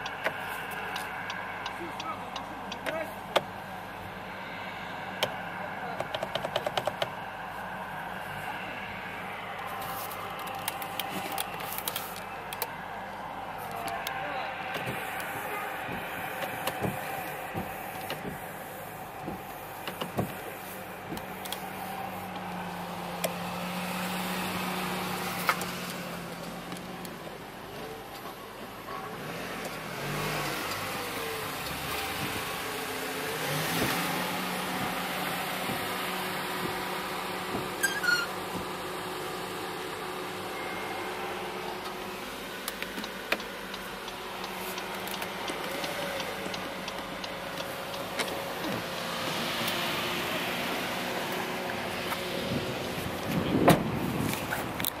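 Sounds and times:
windshield wiper motor whirring: 0.0 - 55.0.

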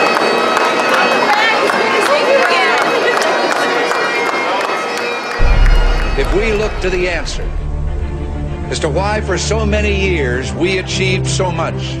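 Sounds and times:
crowd talking and calling out: 0.1 - 9.2.

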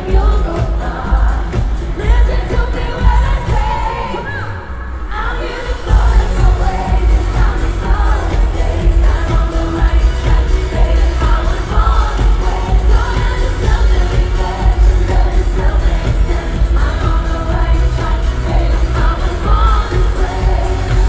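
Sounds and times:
woman singing: 0.0 - 21.0
dance beat with heavy bass: 5.9 - 21.0.

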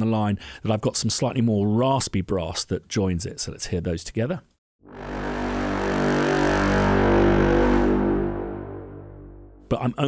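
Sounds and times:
brass chord: 4.8 - 9.7
low sustained bed: 4.8 - 9.7.

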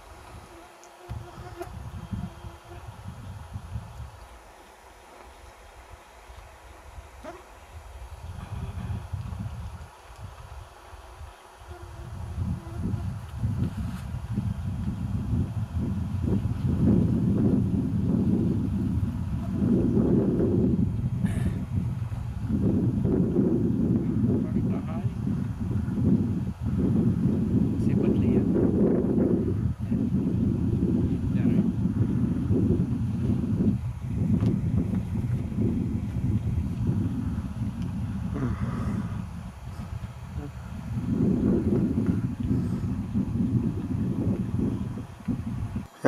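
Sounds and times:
wind buffeting microphone: 0.0 - 4.6, 5.3 - 46.0.

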